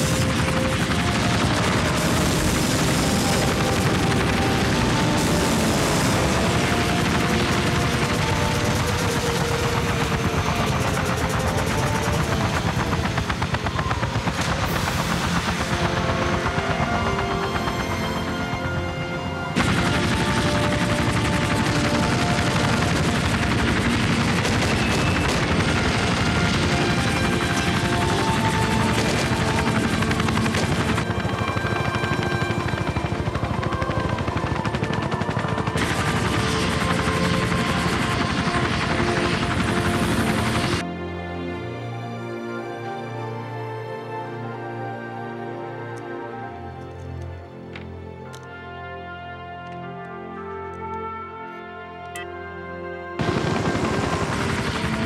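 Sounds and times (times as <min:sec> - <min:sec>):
rapid automatic gunfire: 0:00.0 - 0:18.8, 0:19.5 - 0:40.8, 0:53.2 - 0:55.0
helicopter rotor chop: 0:00.0 - 0:40.9, 0:53.2 - 0:55.0
film score music: 0:00.0 - 0:55.0.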